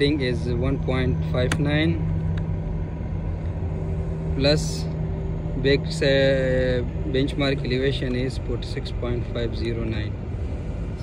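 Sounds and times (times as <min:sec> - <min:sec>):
low rumble of machinery: 0:00.0 - 0:11.0.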